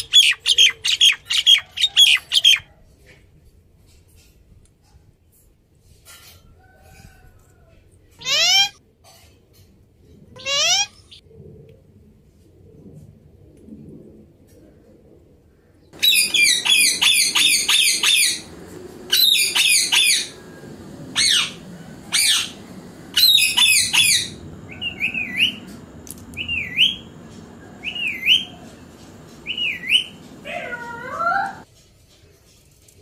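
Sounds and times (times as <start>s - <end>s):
parakeet chirps: 8.2s - 8.8s, 10.4s - 11.1s, 16.0s - 20.4s, 21.1s - 31.6s
parakeet squawking: 8.2s - 8.8s, 10.4s - 11.0s, 16.0s - 20.4s, 21.1s - 25.7s.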